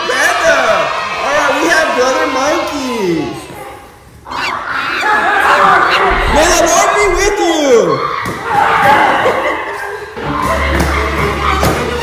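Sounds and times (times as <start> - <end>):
voices shouting: 0.1 - 9.6.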